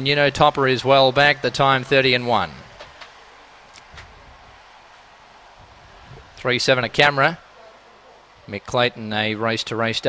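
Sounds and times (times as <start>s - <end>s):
background hiss: 0.0s - 10.0s
faint clicks: 2.7s - 4.1s.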